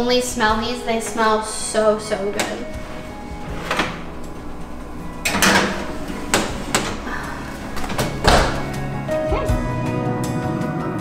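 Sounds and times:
background music: 0.0 - 11.0
oven door shutting: 2.1 - 9.6
baking tray onto oven rack: 2.4 - 9.0.

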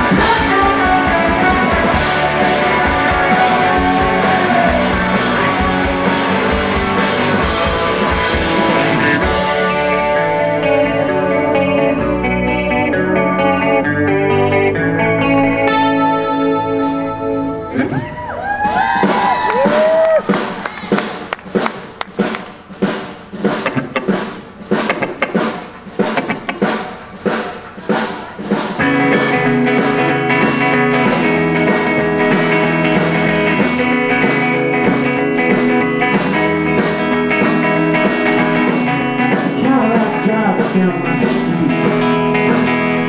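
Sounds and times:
drum kit: 0.0 - 43.0
electric guitar: 0.0 - 43.0.

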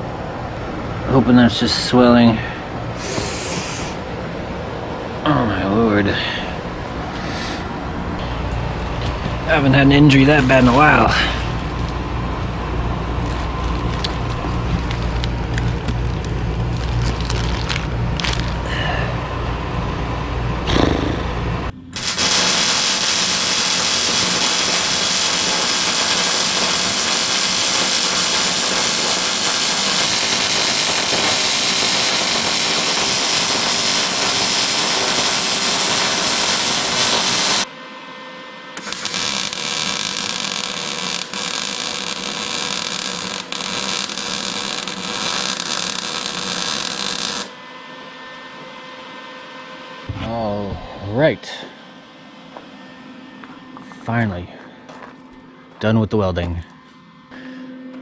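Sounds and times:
arc welding hiss: 3.0 - 4.0, 22.0 - 37.7, 38.8 - 47.6.

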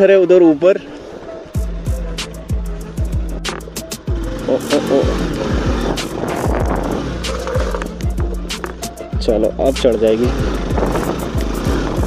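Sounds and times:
motorcycle engine at low revs: 1.7 - 12.0.

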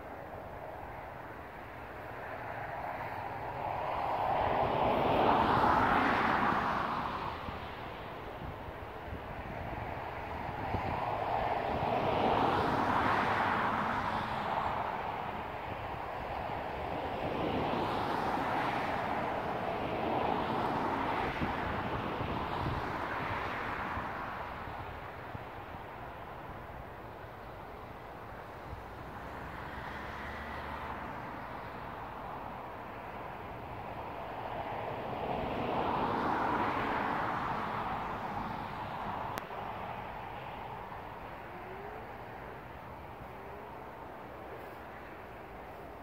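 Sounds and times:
vehicles passing by: 0.0 - 46.0.

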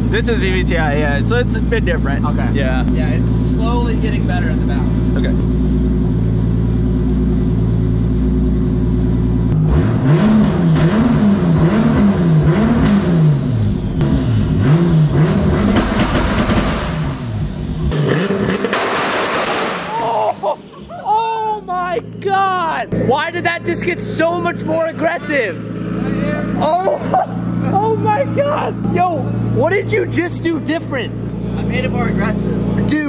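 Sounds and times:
car engine idling and revving: 0.0 - 33.0
exhaust pops and cracks: 18.2 - 20.3.

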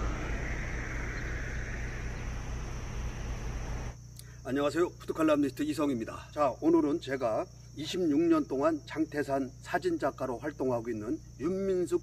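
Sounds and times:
bright rushing sound: 0.0 - 4.0
hiss: 0.0 - 4.0
low rumble: 0.0 - 4.0.

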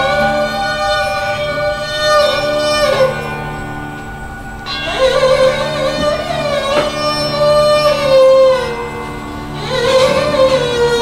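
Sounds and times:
bowed sarangi with violins: 0.0 - 11.0.

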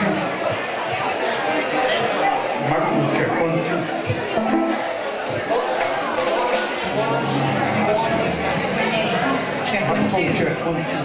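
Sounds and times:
voices in room: 0.0 - 11.0
plucked string notes: 2.8 - 5.5.

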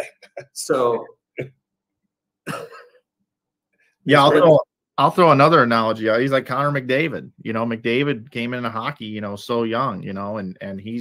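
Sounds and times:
man laughing: 2.5 - 2.9.

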